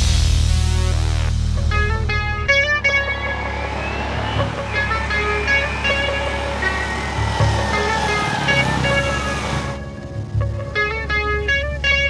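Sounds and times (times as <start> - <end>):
background music: 0.0 - 12.0
motorcycle engine slowing down: 0.0 - 12.0.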